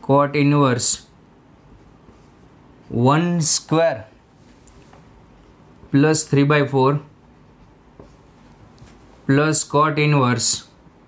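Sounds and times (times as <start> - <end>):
marker writing on a whiteboard: 7.2 - 9.1.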